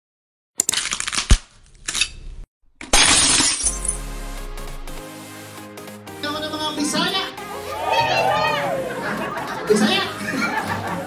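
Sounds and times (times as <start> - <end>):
glass shattering: 2.8 - 4.9
steady low tone: 3.6 - 5.7.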